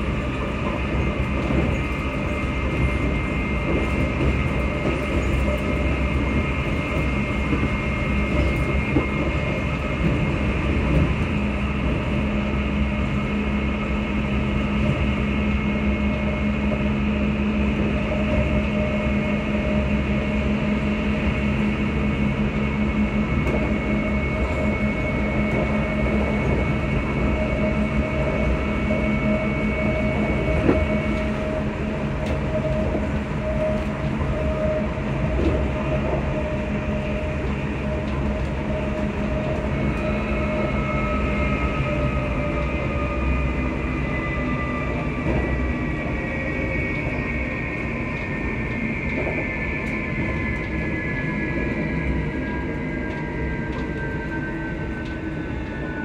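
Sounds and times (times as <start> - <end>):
train rumbling on track: 0.0 - 56.0
train whine: 0.0 - 56.0.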